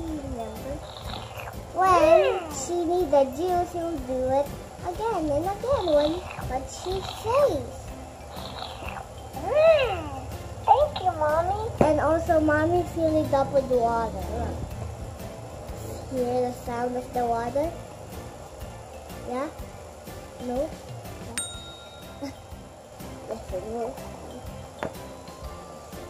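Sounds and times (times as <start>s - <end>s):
bright bell ding: 21.4s - 22.6s.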